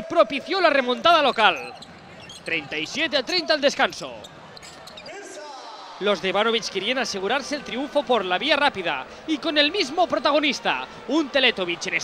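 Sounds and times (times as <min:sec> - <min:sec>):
basketball court noise: 0:00.6 - 0:12.0
crowd murmur: 0:06.6 - 0:12.0.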